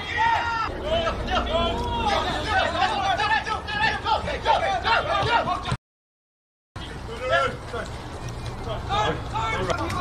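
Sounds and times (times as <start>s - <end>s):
voices shouting: 0.0s - 5.8s, 6.8s - 10.0s.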